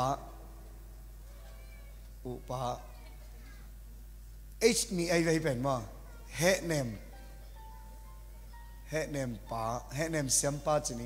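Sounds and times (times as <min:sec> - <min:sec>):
low steady sound system hum: 0:00.0 - 0:11.0
man speaking into a microphone: 0:02.3 - 0:02.9, 0:04.6 - 0:07.0, 0:08.9 - 0:11.0.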